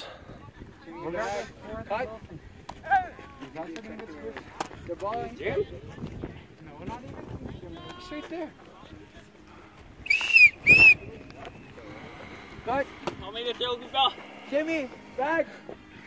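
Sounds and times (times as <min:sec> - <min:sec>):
murmur of players' voices: 0:00.0 - 0:16.0
short whistle blasts: 0:10.0 - 0:11.0.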